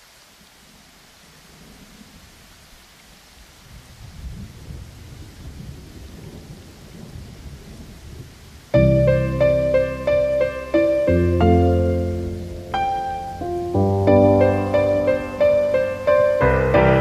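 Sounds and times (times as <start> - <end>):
rain hiss: 0.0 - 17.0
low rolling thunder: 3.4 - 17.0.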